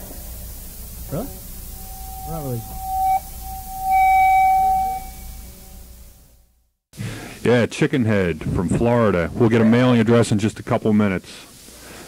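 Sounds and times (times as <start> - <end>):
guitar amplifier feedback: 1.1 - 6.2.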